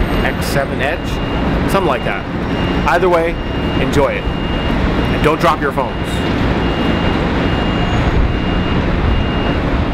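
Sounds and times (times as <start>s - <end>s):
reversing alarm beeping: 0.0s - 9.9s
steady low rumble: 0.0s - 9.9s.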